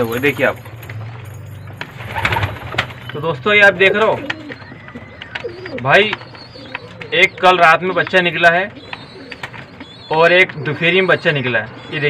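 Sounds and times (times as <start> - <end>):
pigeons cooing: 0.0 - 12.0
clicks: 3.9 - 10.7.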